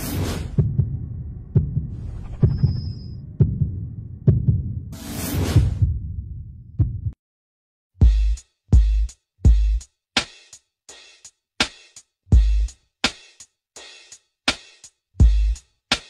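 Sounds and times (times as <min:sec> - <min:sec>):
loud whoosh: 0:00.0 - 0:06.4
low heartbeat-like thump: 0:00.4 - 0:05.0, 0:05.6 - 0:07.2.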